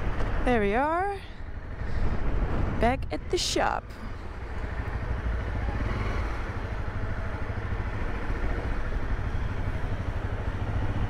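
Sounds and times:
motorcycle engine running at low revs: 4.0s - 11.0s.

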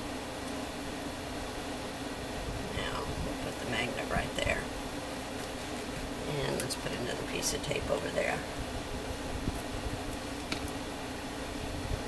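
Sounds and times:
low constant hum: 0.0s - 12.0s.

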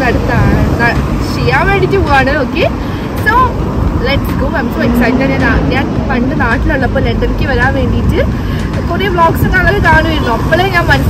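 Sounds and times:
road traffic rumble: 0.0s - 11.0s
woman talking: 0.0s - 11.0s.

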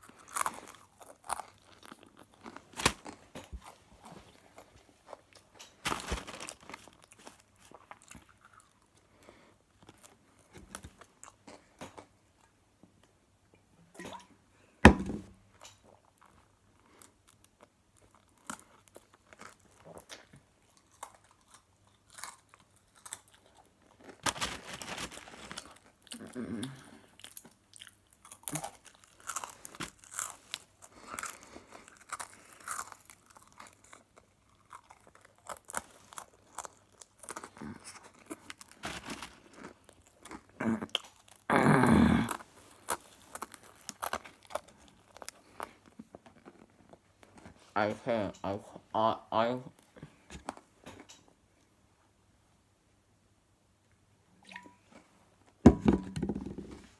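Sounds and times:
pretzel sticks crunching: 21.0s - 25.9s, 28.2s - 40.4s, 42.7s - 46.7s.

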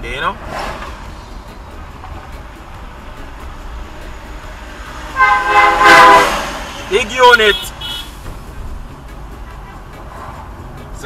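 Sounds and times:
car road and engine noise: 0.0s - 11.0s
vehicle horn: 4.1s - 8.2s, 9.4s - 10.0s.

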